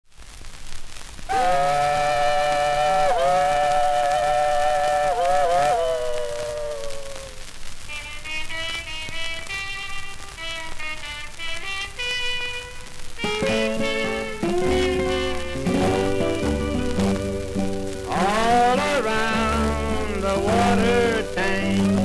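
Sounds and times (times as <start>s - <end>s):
record hiss: 0.0s - 22.0s
chord imitating train whistle: 1.3s - 22.0s
acoustic guitars picking: 13.2s - 22.0s.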